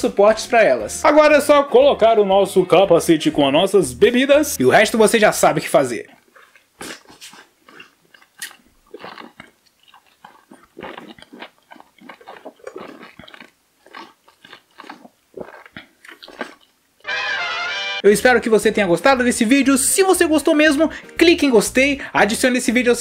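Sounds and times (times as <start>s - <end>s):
sipping and swallowing: 6.0s - 16.8s
steady musical sound: 17.0s - 18.8s.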